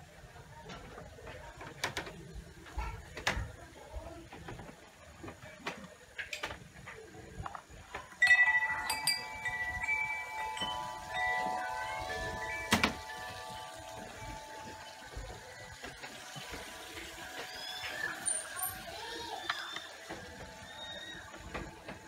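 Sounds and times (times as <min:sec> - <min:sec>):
metal wind chimes ringing: 0:08.2 - 0:20.1.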